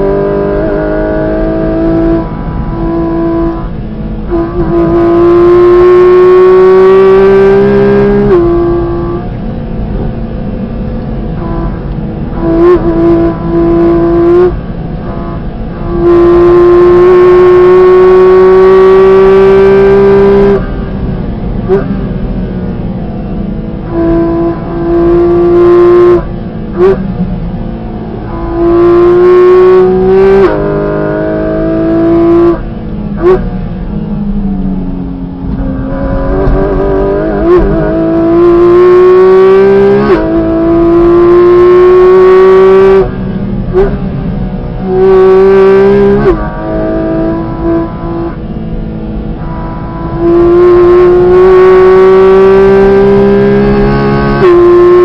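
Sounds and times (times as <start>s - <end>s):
car engine revving hard: 0.0s - 33.8s, 35.0s - 55.0s.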